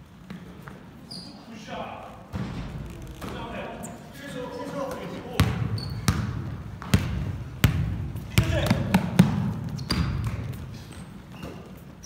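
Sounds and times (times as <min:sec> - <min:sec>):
basketball bouncing on wooden floor: 0:05.4 - 0:10.7.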